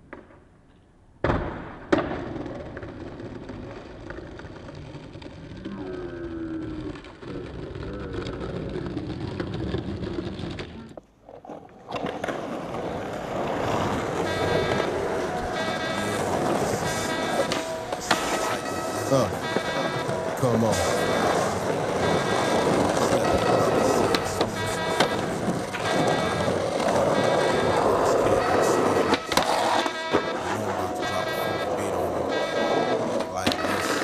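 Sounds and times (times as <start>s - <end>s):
skateboard wheels rolling on asphalt: 0.0s - 30.5s, 31.6s - 34.0s
skateboard clacks: 1.2s - 5.8s, 6.8s - 30.6s, 31.5s - 34.0s.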